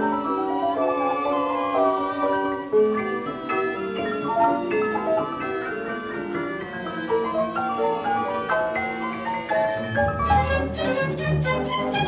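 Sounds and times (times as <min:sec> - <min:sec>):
piano and orchestra playing: 0:00.0 - 0:12.0.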